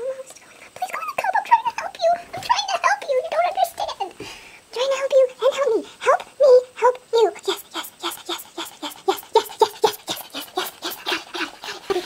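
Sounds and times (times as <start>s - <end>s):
sped-up woman whimpering: 7.4s - 12.0s.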